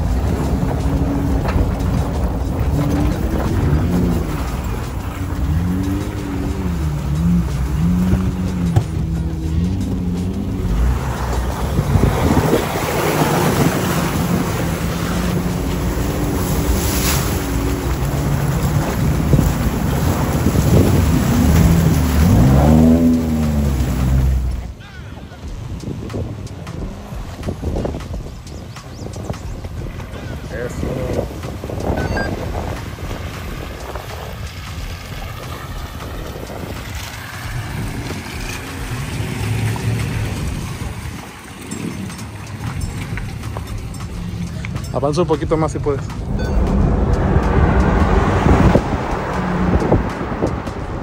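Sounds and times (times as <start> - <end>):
off-road engine running: 0.0 - 51.0
water splashing: 0.0 - 51.0.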